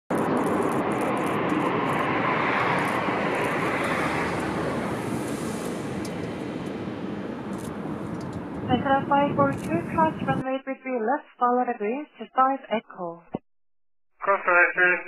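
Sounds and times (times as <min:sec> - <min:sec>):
jet engine rushing: 0:00.1 - 0:10.4.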